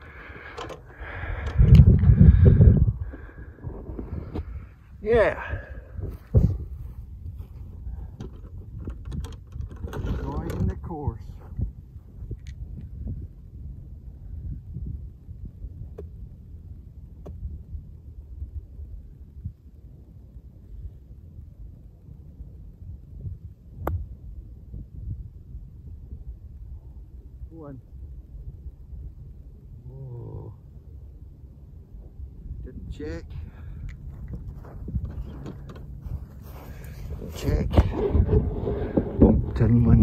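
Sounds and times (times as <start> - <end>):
wind rumbling on microphone: 0.0 - 40.0.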